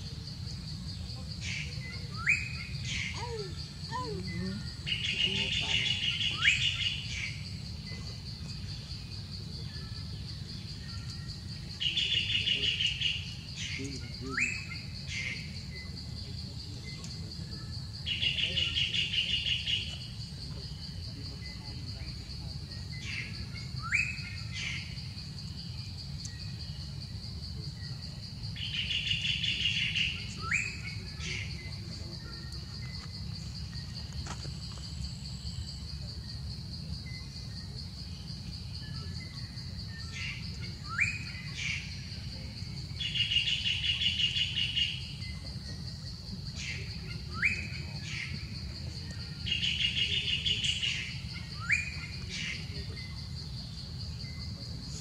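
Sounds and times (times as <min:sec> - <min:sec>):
high-pitched insect-like hum: 0:00.0 - 0:55.0
wild birds calling: 0:00.6 - 0:09.0, 0:10.0 - 0:16.0, 0:49.2 - 0:53.4.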